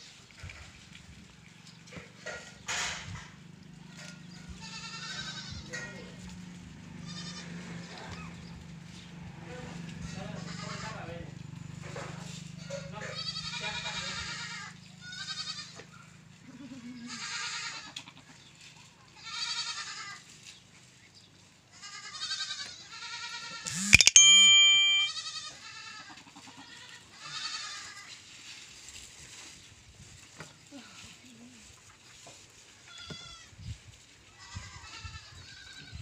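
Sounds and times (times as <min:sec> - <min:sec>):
goats bleating: 0:04.5 - 0:05.9, 0:07.0 - 0:07.8, 0:10.4 - 0:10.9, 0:12.6 - 0:18.3, 0:19.2 - 0:20.2, 0:21.7 - 0:23.7, 0:25.2 - 0:28.2, 0:34.4 - 0:36.0.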